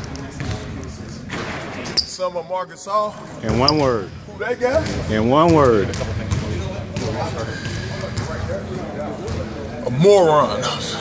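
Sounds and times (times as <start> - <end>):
faint echoing voices: 0.0 - 11.0
basketballs bouncing on wooden floor: 4.7 - 8.5, 9.2 - 9.5.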